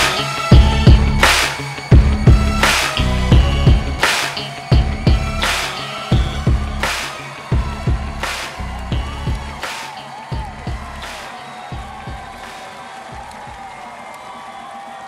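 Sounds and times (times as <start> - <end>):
hip-hop beat with heavy kick drums: 0.0 - 13.8
faint crowd clapping and cheering: 0.0 - 15.0.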